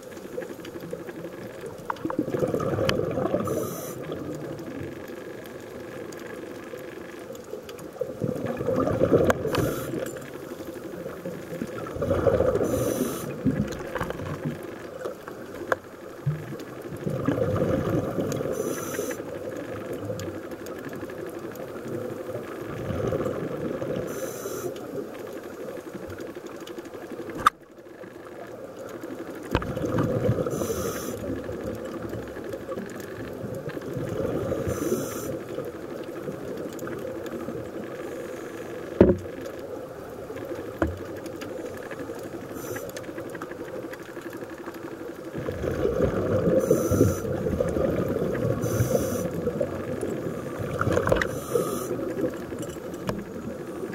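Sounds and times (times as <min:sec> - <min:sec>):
steady underwater hiss: 0:00.0 - 0:53.9
bubbles bursting underwater: 0:02.1 - 0:03.4, 0:08.2 - 0:09.5, 0:11.8 - 0:12.6, 0:17.0 - 0:18.3, 0:29.6 - 0:30.5, 0:45.4 - 0:46.6
diver breathing through regulator: 0:03.4 - 0:04.2, 0:09.4 - 0:10.0, 0:12.6 - 0:13.4, 0:18.5 - 0:19.2, 0:30.5 - 0:31.3, 0:34.6 - 0:35.4, 0:46.5 - 0:47.4, 0:48.6 - 0:49.4, 0:51.2 - 0:52.1.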